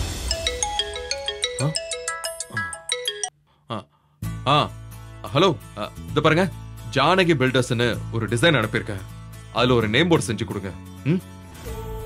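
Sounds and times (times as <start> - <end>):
mobile phone ringtone melody: 0.1 - 3.3.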